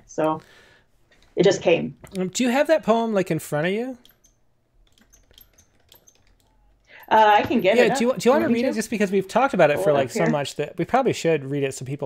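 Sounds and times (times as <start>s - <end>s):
computer keyboard typing: 3.6s - 9.0s.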